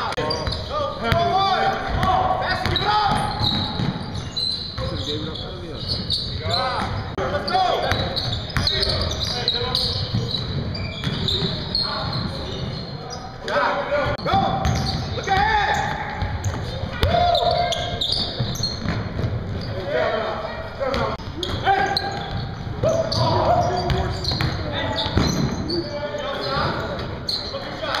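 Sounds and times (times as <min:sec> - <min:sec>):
players' voices and shouts: 0:00.0 - 0:18.8, 0:19.6 - 0:28.0.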